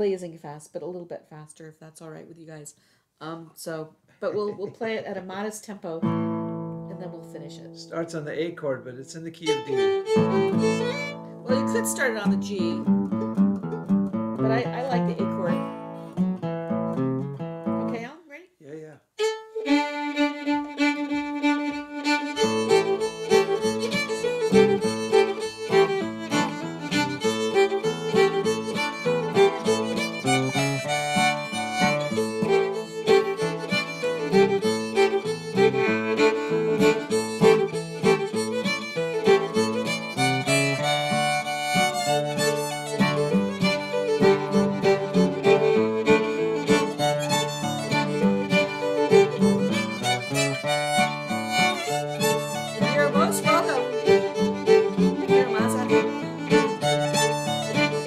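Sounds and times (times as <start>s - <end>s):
fiddle playing: 4.3s - 4.8s, 6.0s - 18.2s, 19.1s - 58.0s
strummed acoustic guitar: 6.0s - 8.5s, 9.5s - 18.1s, 19.2s - 58.0s.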